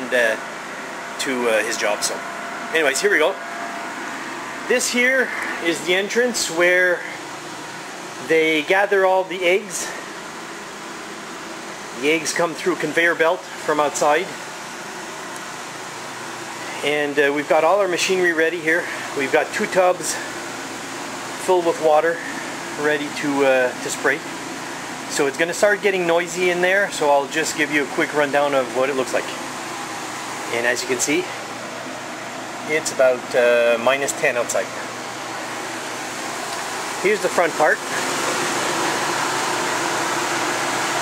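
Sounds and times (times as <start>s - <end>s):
machinery rushing hum: 0.0s - 41.0s.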